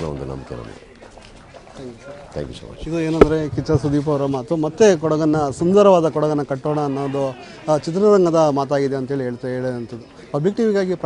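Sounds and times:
man speaking: 1.8 - 11.0.

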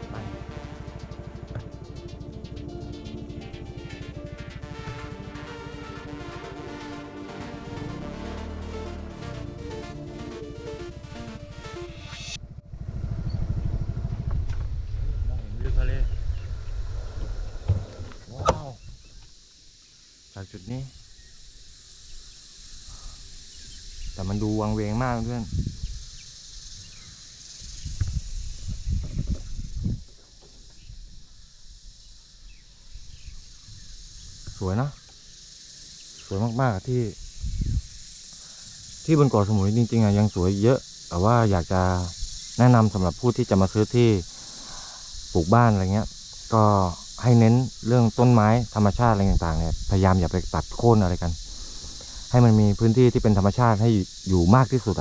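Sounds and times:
motorcycle engine rumbling: 0.0 - 17.7
insects trilling: 0.0 - 55.0.

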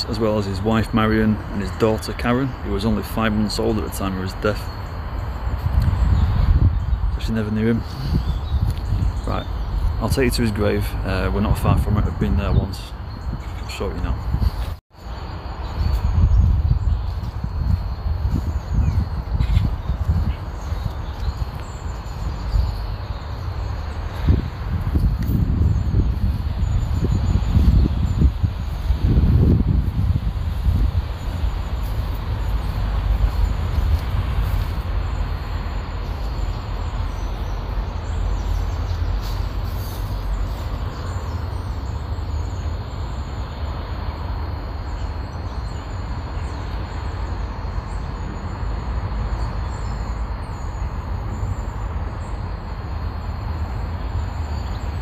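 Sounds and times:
faint bird chirps: 0.0 - 29.0
wind rumbling on microphone: 0.0 - 55.0.

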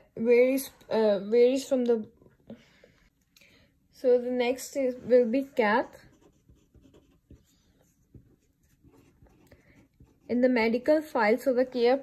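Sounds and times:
pen scratching on paper: 5.1 - 10.5.

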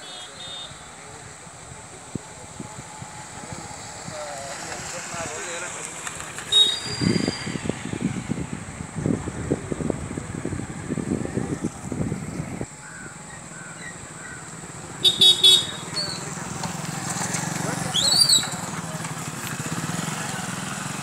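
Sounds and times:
vehicle horn toots: 0.0 - 1.0, 6.5 - 7.5, 15.0 - 16.2
motorcycle engine running roughly: 14.2 - 21.0.

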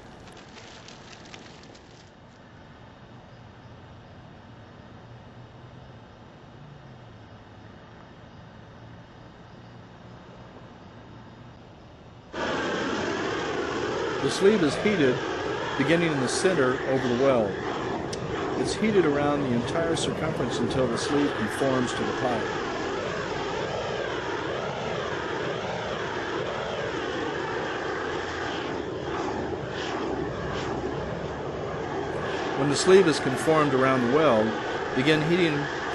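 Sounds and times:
gas torch flame roaring: 12.4 - 35.9.

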